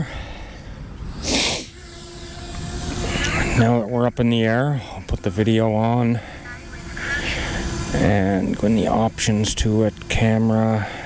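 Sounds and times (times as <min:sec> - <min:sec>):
drone motors humming: 0:00.0 - 0:11.0
loud burst of hiss: 0:01.1 - 0:01.8.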